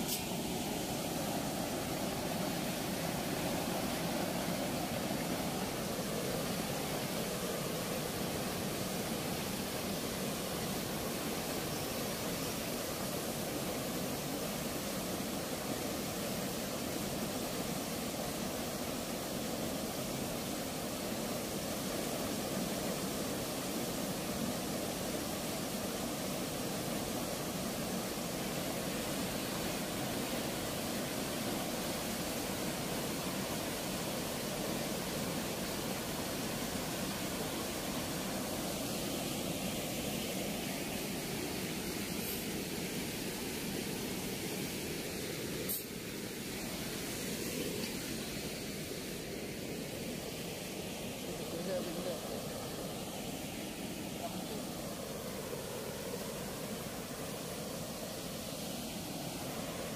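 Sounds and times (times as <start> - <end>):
water rushing through sluice gate: 0.0 - 59.9.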